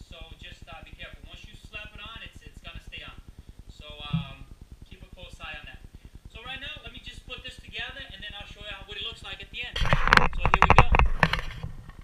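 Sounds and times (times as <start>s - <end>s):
camera handling knocks and rustling: 9.8s - 12.0s.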